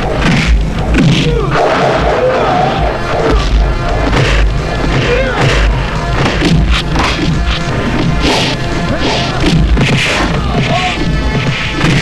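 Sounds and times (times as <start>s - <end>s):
background score music: 0.0s - 12.0s
crash: 0.0s - 12.0s.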